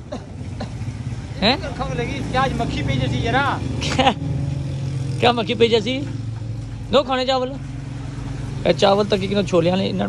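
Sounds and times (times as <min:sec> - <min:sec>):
vehicle engine running: 0:00.0 - 0:10.0
people talking: 0:01.4 - 0:04.2, 0:05.2 - 0:06.2, 0:06.9 - 0:07.6, 0:08.6 - 0:10.0.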